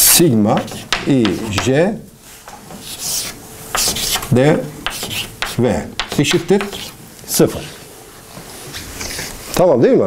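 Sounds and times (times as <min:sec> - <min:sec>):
chalk scratching on blackboard: 0:00.6 - 0:01.8, 0:02.7 - 0:07.8.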